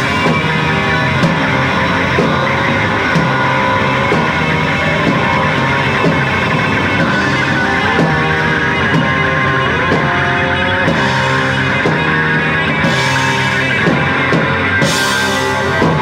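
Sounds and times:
live rock band: 0.0 - 16.0
sliding electric guitar notes: 0.0 - 16.0.

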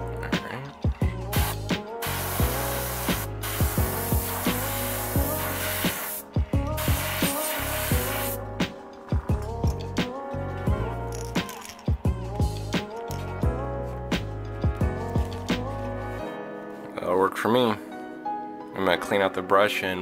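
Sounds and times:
background music with steady beat: 0.0 - 20.0
airbrush spraying: 1.3 - 8.4.

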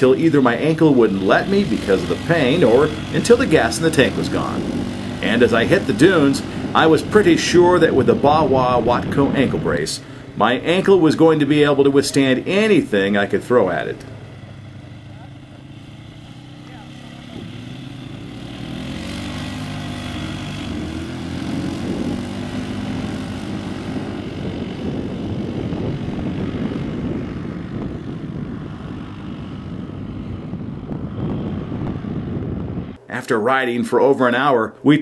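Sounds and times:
quad bike engine revving: 0.0 - 33.0.

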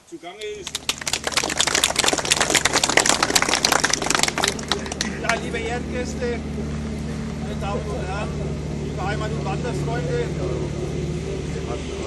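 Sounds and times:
audience applauding: 0.4 - 5.6.

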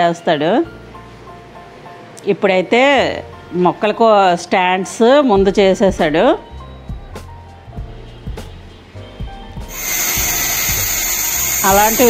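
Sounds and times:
background music: 0.0 - 12.0
angle grinder whining on steel: 9.7 - 12.0.

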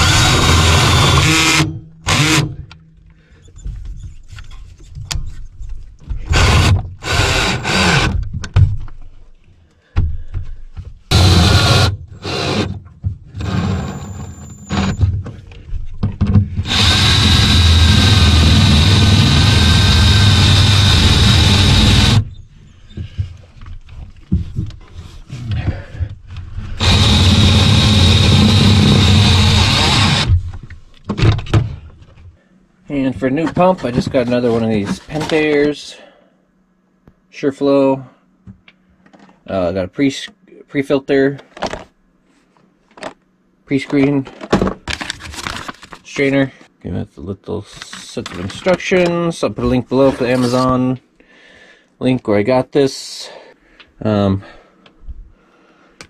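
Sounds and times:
cordless drill running: 0.0 - 2.5, 6.3 - 8.2, 11.1 - 12.8, 13.4 - 15.0, 16.6 - 22.3, 26.8 - 30.3.

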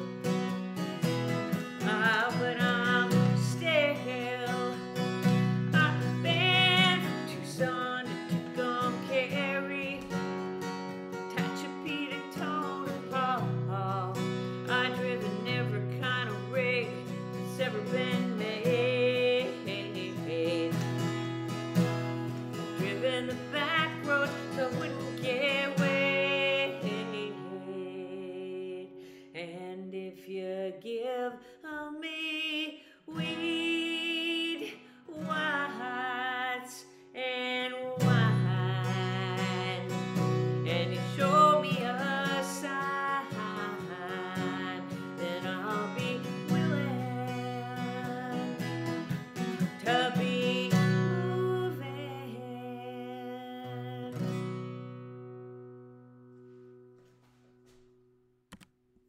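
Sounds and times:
acoustic guitar strumming: 0.0 - 28.3, 37.8 - 57.8
woman singing: 1.1 - 54.6.

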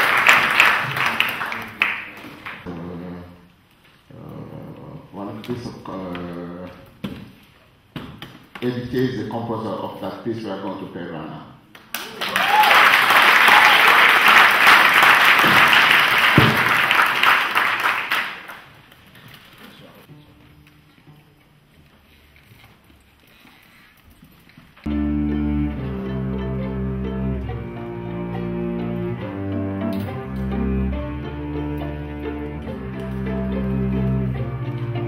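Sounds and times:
audience applause: 0.0 - 2.7, 11.9 - 18.8
string orchestra playing chords: 24.9 - 35.0.

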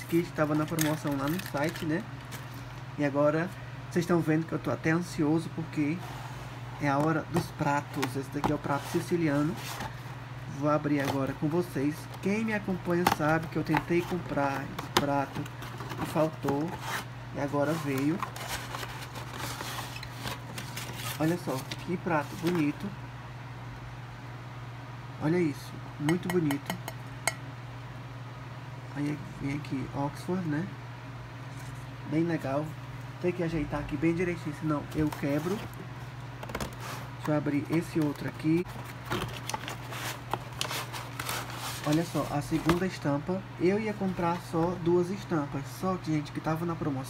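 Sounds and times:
steady low hum: 0.0 - 47.0
cardboard rustling and scraping: 5.8 - 10.1, 10.8 - 22.8, 34.4 - 43.1.

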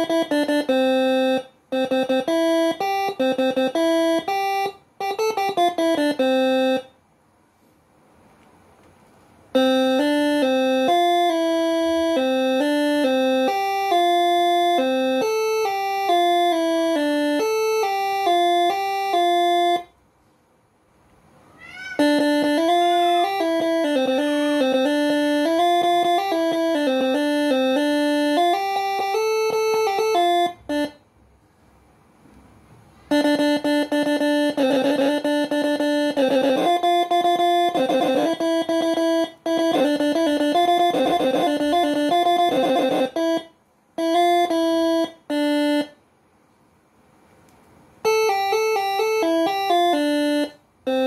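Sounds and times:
multi-tone air horn melodies: 0.0 - 7.0, 9.6 - 20.0, 22.0 - 31.0, 33.1 - 46.0, 48.1 - 51.0.

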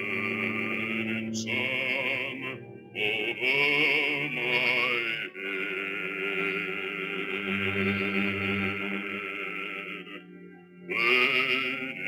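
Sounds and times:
bass voice singing with vibrato: 0.0 - 10.3
instrumental accompaniment: 0.0 - 12.0.

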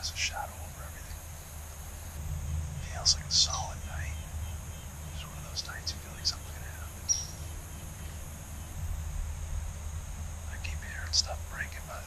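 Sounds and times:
person whispering: 0.0 - 1.2, 2.8 - 4.2, 5.2 - 7.0, 10.5 - 12.0
faint high hiss: 0.0 - 12.0
low rumble: 0.0 - 12.0.

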